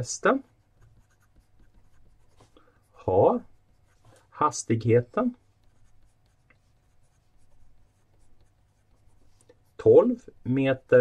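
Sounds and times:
pen scratching on paper: 0.4 - 4.4, 5.0 - 9.9.

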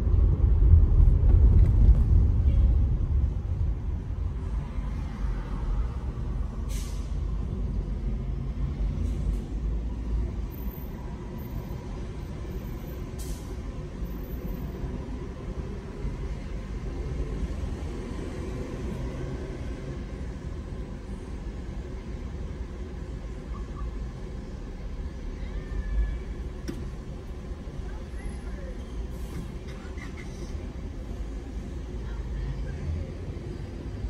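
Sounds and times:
low traffic rumble: 0.0 - 34.0
bus air brakes hissing: 6.6 - 7.3, 13.1 - 13.7, 29.0 - 30.7.

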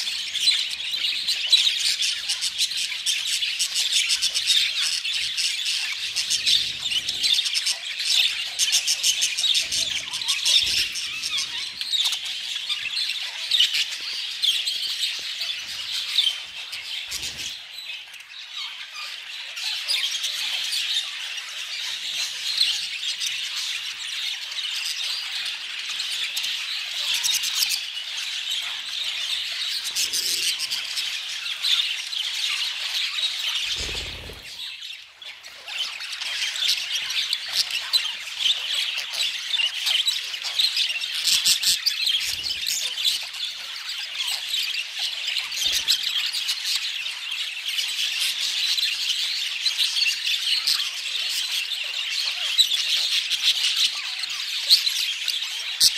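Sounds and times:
budgerigars chattering: 24.6 - 55.9.

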